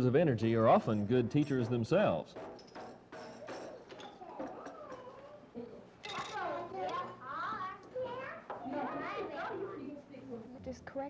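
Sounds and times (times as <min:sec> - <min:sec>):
young children chattering: 0:03.4 - 0:11.0.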